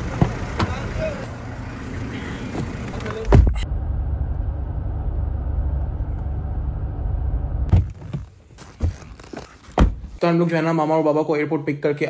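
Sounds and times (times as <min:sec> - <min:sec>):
low vehicle rumble: 0:00.0 - 0:08.1.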